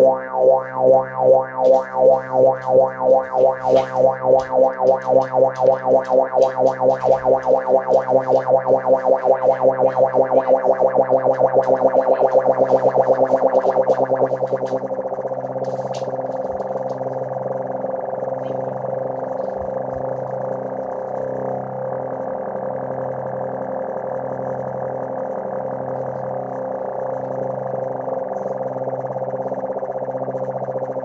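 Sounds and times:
electronic keyboard droning chord: 0.0s - 31.0s.

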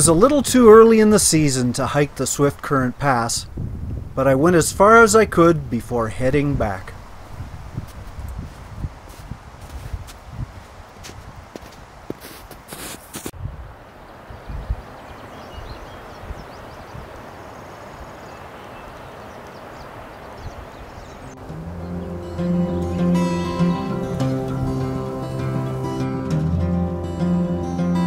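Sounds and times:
boots crunching on snow: 7.8s - 13.4s.

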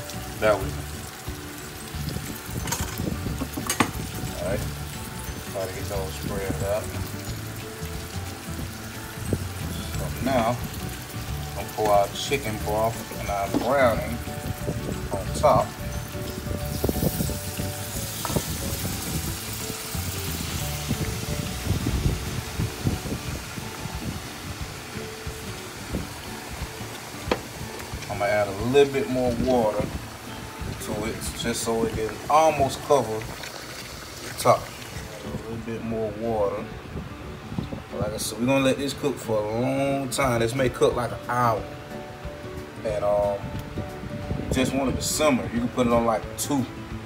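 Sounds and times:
sauce sizzling in a hot pan: 0.0s - 35.9s
faint music: 0.0s - 47.0s
pouring liquid: 1.9s - 35.5s.

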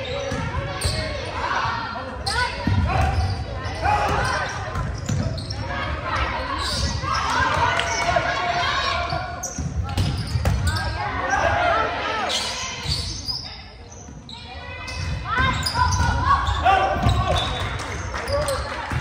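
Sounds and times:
players shouting: 10.7s - 12.9s, 14.5s - 19.0s.

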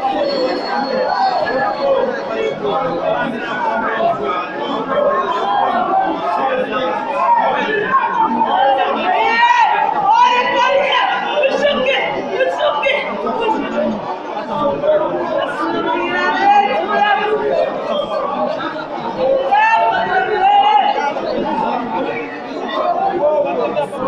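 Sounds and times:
congregation praying aloud: 0.0s - 24.0s.

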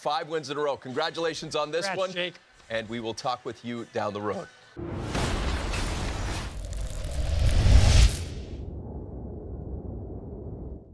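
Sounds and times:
whooshing swell with low rumble: 6.5s - 10.9s.

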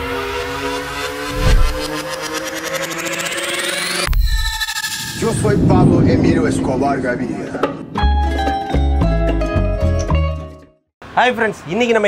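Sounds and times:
synthetic riser with flutter: 0.6s - 5.0s.

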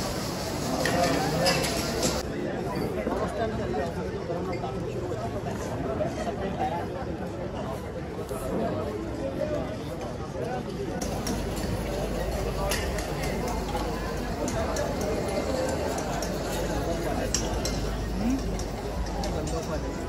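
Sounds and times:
diners talking: 0.0s - 20.0s
clinks of plates and cutlery: 0.7s - 3.0s, 11.0s - 20.0s.

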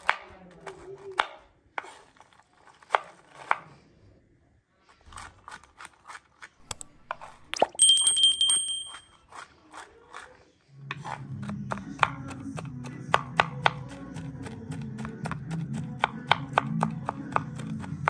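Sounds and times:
knife chopping on wooden board: 10.9s - 18.0s.

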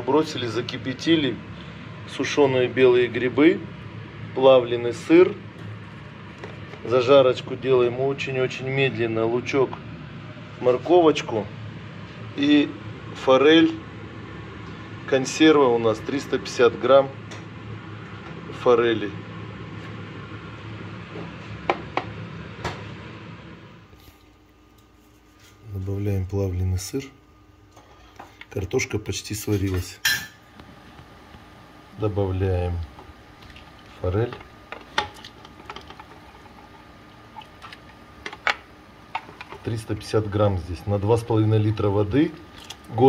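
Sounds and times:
low kitchen hum and hiss: 0.0s - 43.0s.

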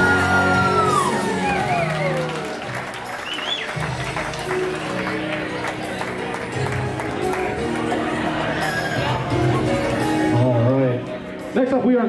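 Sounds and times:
guests whooping and cheering: 0.0s - 4.0s
slow dance song: 0.0s - 11.6s.

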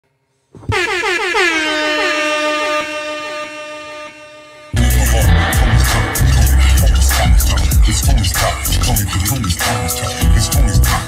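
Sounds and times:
air horn blast: 0.6s - 7.7s.

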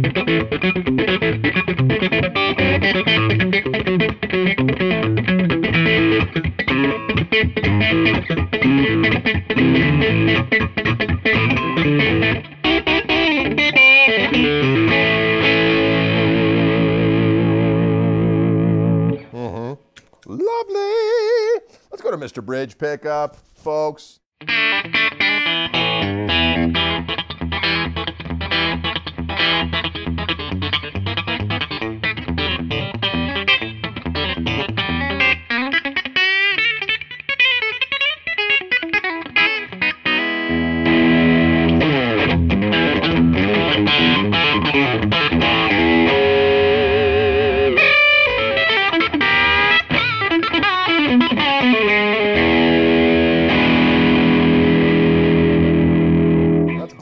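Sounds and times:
electric guitar through amplifier: 0.0s - 19.4s, 24.5s - 57.0s.

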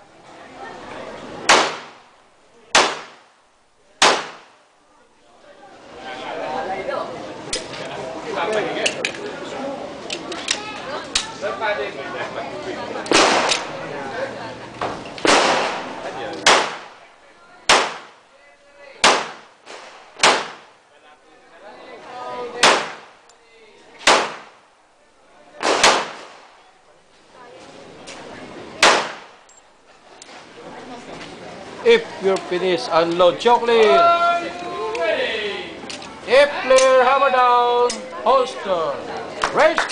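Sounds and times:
murmur of voices: 0.0s - 39.9s
pistol shots with echo: 1.5s - 2.0s, 2.7s - 3.3s, 4.0s - 4.6s, 13.1s - 13.7s, 15.2s - 17.0s, 17.7s - 18.2s, 19.0s - 20.7s, 22.6s - 23.2s, 24.0s - 24.6s, 25.6s - 26.5s, 28.8s - 29.4s.

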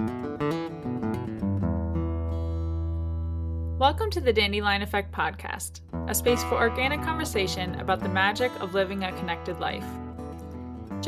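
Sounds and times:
acoustic guitar music: 0.0s - 11.0s
person speaking: 3.8s - 9.9s.

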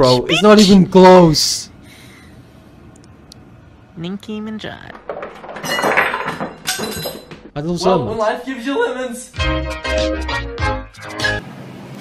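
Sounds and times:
lemons clattering into a bowl: 4.9s - 7.6s.

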